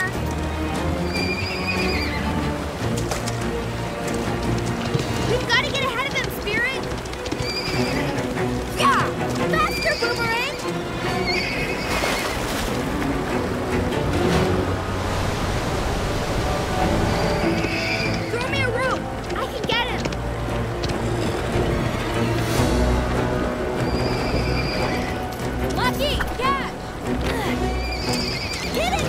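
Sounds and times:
orchestral music: 0:00.0 - 0:29.0
river water rushing: 0:00.0 - 0:29.0
horse whinnying: 0:01.0 - 0:02.3, 0:07.3 - 0:08.3, 0:09.6 - 0:12.5, 0:23.8 - 0:25.4, 0:27.4 - 0:29.0.

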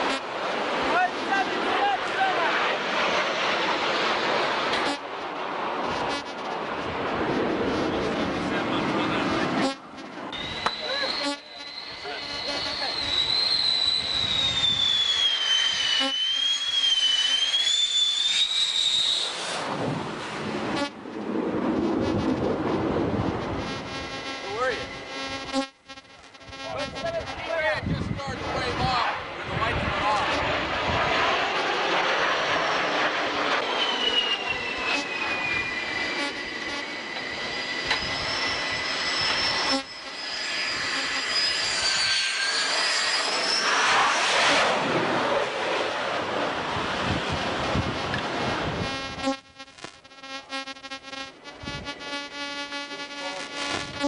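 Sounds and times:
jet aircraft flying past: 0:00.0 - 0:25.4, 0:26.8 - 0:49.2
high jet engine whine: 0:00.0 - 0:54.0
wind on microphone: 0:14.0 - 0:15.0, 0:19.6 - 0:24.2, 0:26.4 - 0:31.2, 0:46.7 - 0:49.4, 0:51.6 - 0:52.0.

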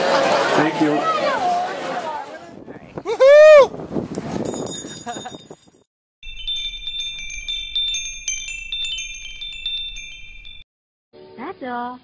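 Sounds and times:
wind chimes tinkling: 0:04.4 - 0:10.7.

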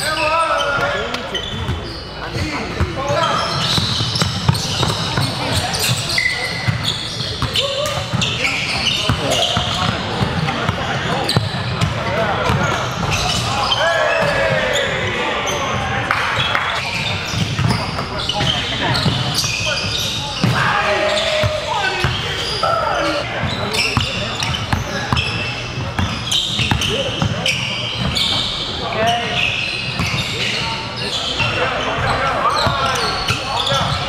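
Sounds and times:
indistinct voices echoing: 0:11.9 - 0:24.4.

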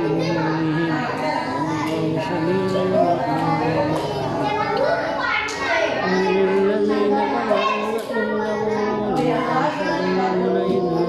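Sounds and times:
man chanting verses: 0:00.0 - 0:05.2, 0:05.8 - 0:11.0.

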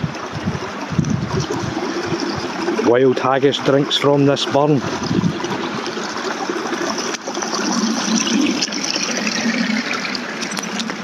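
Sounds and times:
stream water trickling: 0:00.0 - 0:11.0.

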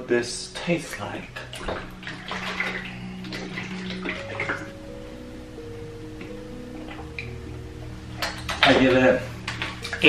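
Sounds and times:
background music: 0:00.0 - 0:10.0
liquid sloshing in carton: 0:00.8 - 0:04.6.

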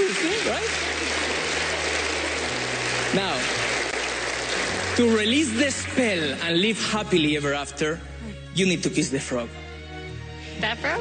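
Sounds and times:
studio audience applauding: 0:00.0 - 0:07.6
low music underscore: 0:00.0 - 0:11.0.

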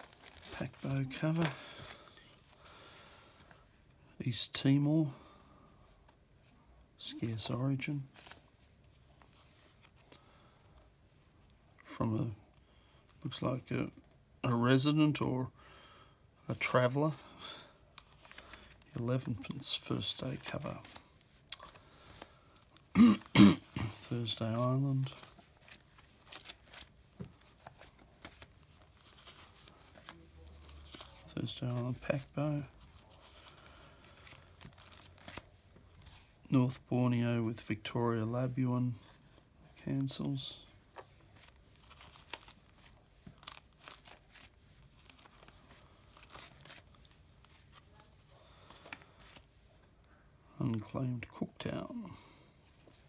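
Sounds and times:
paper envelopes rustling: 0:00.0 - 0:03.7, 0:07.3 - 0:11.7, 0:16.6 - 0:36.5, 0:39.0 - 0:50.0, 0:52.6 - 0:53.0
man coughing: 0:22.9 - 0:24.1.

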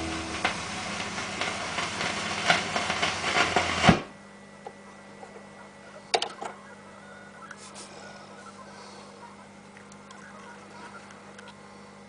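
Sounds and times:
vinyl record hiss and crackles: 0:00.0 - 0:12.0.

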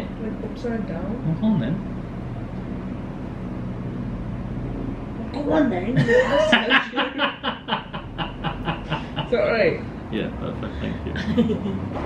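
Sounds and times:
faint hum: 0:00.0 - 0:12.0
low rumble: 0:07.1 - 0:12.0.

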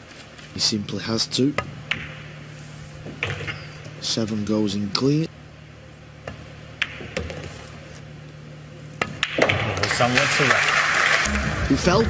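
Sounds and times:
steady low hum: 0:00.0 - 0:12.0
pool balls clicking: 0:01.6 - 0:02.3, 0:06.2 - 0:07.7, 0:08.9 - 0:11.2.

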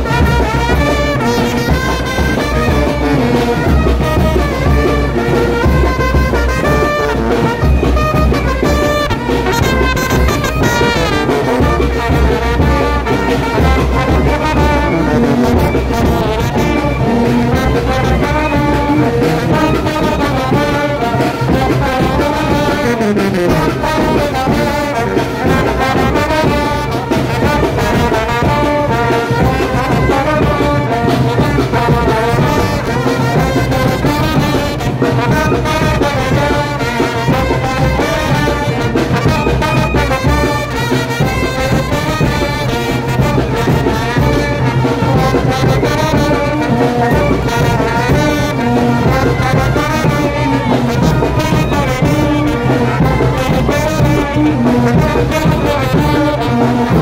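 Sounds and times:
brass band playing: 0:00.0 - 0:57.0.

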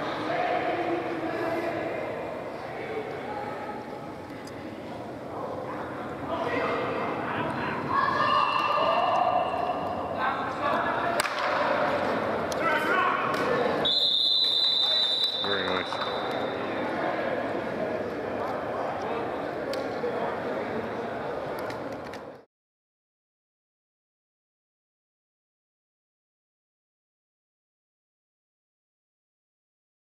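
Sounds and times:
players shouting: 0:06.3 - 0:13.8
referee whistle blast: 0:13.8 - 0:16.3.

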